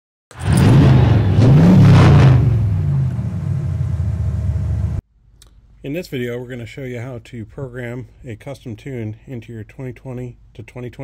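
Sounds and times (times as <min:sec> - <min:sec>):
vehicle engine revving: 0:00.3 - 0:05.0.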